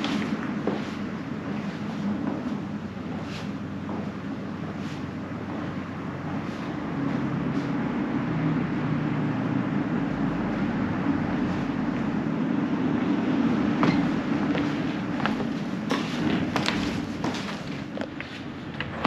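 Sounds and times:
footsteps on wooden floorboards: 0.0 - 7.2, 13.0 - 19.0
low rumble of road traffic: 0.0 - 19.0.

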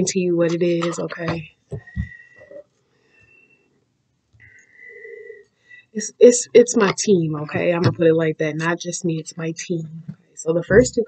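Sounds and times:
faint breathy sound: 1.8 - 3.6, 4.4 - 6.0.

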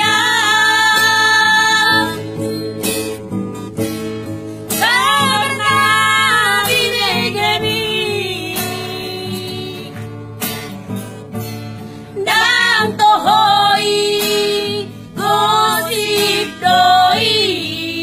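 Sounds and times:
women singing: 0.0 - 2.6, 4.8 - 10.0, 12.2 - 18.0
strummed acoustic guitar: 0.0 - 18.0.

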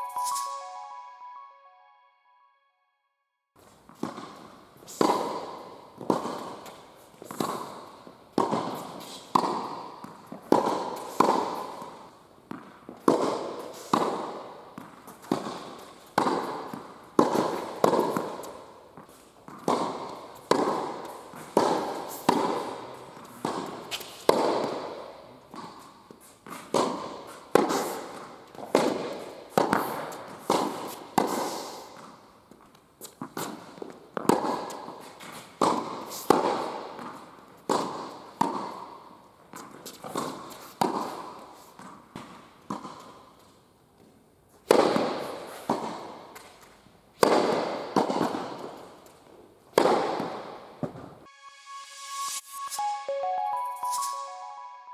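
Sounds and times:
tennis balls struck by rackets: 3.9 - 32.2, 33.1 - 51.2.

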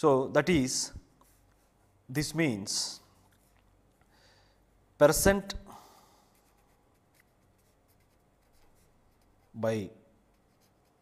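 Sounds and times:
pen scratching handwriting: 6.4 - 9.6, 10.3 - 11.0.

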